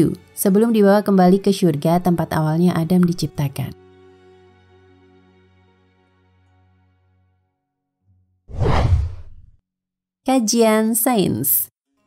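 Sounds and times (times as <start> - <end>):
whoosh sound effect: 8.5 - 9.5.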